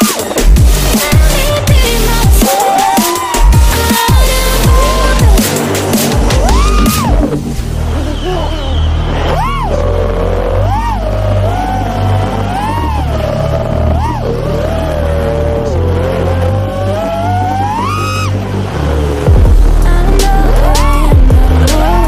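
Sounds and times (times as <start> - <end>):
drone motors whining: 0.0 - 22.0
electronic music with heavy bass: 0.0 - 22.0.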